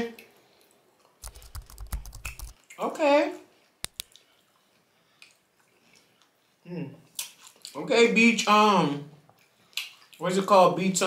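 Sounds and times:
keyboard key clicks: 0:01.2 - 0:02.5.

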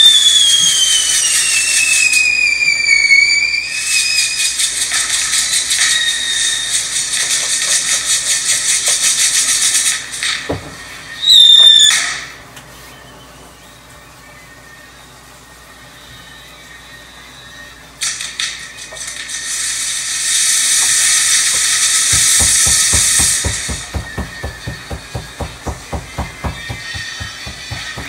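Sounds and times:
fireworks hissing: 0:00.0 - 0:13.0, 0:18.0 - 0:28.0
music with fast drum beat: 0:22.0 - 0:28.0.

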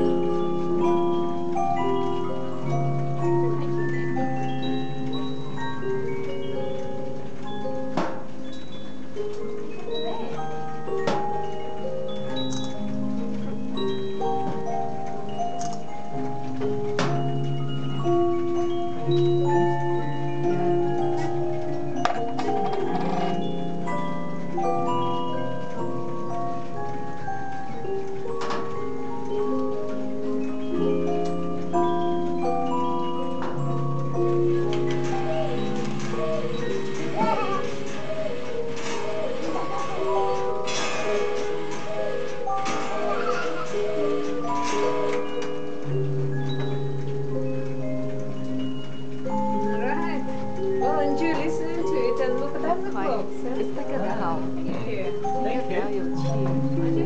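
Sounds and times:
disc music box playing a tune: 0:00.0 - 0:57.0.

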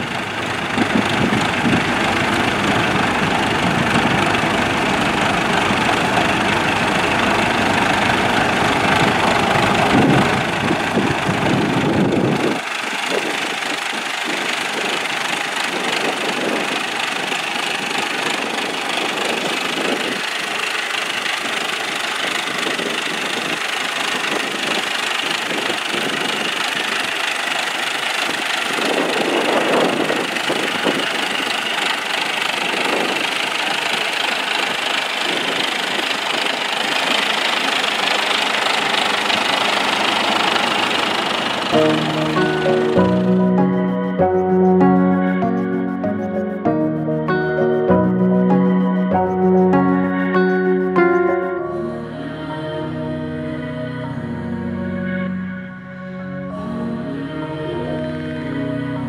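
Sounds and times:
tractor engine under load: 0:00.0 - 0:46.5.

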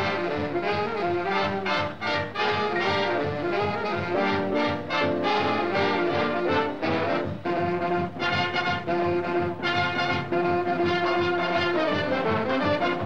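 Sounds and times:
big band swing music: 0:00.0 - 0:13.0.

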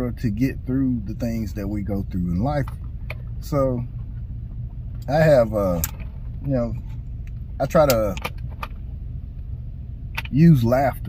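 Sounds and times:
car idling from inside cabin: 0:00.0 - 0:11.0.

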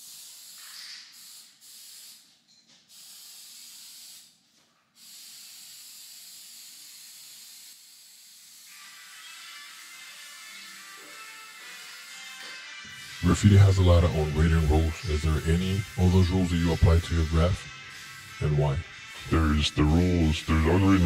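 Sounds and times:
spray paint can hissing: 0:00.0 - 0:21.0.

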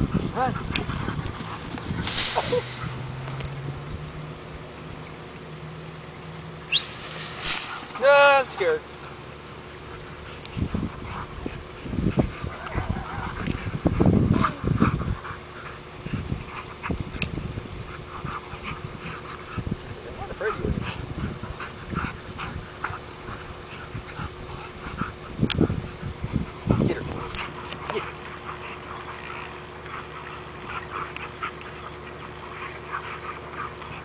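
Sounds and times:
dogs growling and yipping: 0:00.0 - 0:04.9, 0:06.4 - 0:34.0
dogs scuffling: 0:00.1 - 0:03.5, 0:06.7 - 0:13.7.

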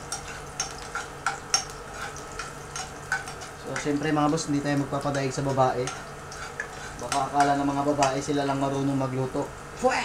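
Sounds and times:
garlic sizzling in oil: 0:00.0 - 0:10.0
metal spoon scraping pan: 0:00.1 - 0:04.0, 0:05.0 - 0:08.1.

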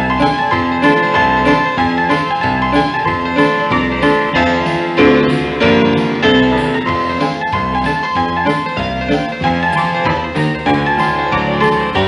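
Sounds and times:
solo piano playing: 0:00.0 - 0:12.0.

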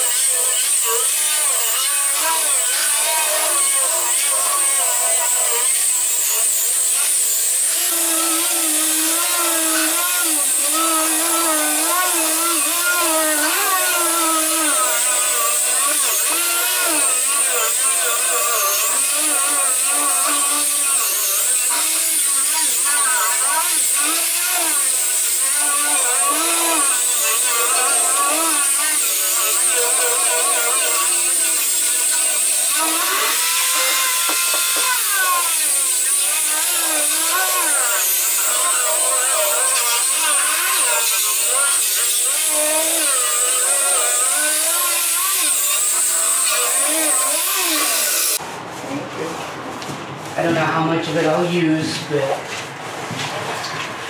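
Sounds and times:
angle grinder on metal: 0:00.0 - 0:48.4.

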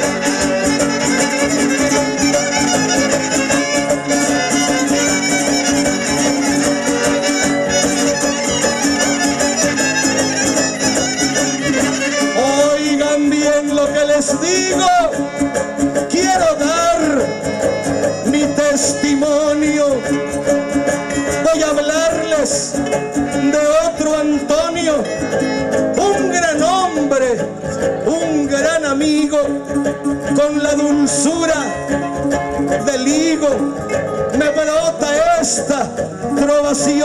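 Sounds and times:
strummed guitars: 0:00.0 - 0:37.0
violins playing ornamented melody: 0:00.0 - 0:37.0.

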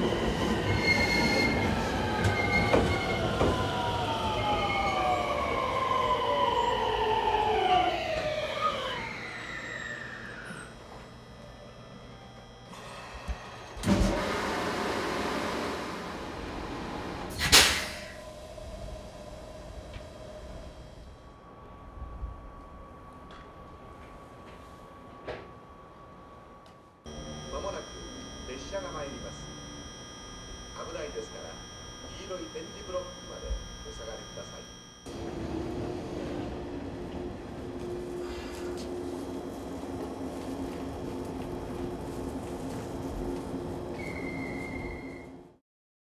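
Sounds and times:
train rumbling: 0:00.0 - 0:09.2, 0:35.1 - 0:45.2
steady train hum: 0:00.0 - 0:45.5.

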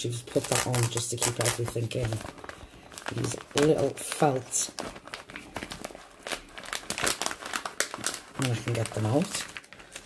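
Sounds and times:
plastic sleeve crinkling: 0:00.0 - 0:10.0.

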